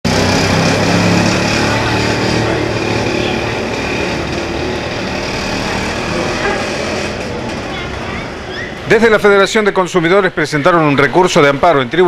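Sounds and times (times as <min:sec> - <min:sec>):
vehicle engine running: 0:00.0 - 0:08.5
street traffic noise: 0:00.0 - 0:12.0.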